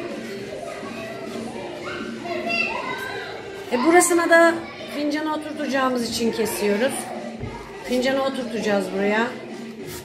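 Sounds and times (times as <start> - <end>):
young children talking: 0.0 - 9.9.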